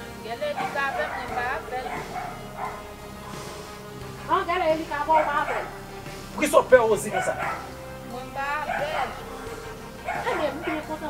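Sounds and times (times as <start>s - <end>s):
background music: 0.0s - 11.0s
people talking: 0.2s - 3.5s, 4.2s - 5.7s, 6.4s - 7.5s, 8.1s - 11.0s.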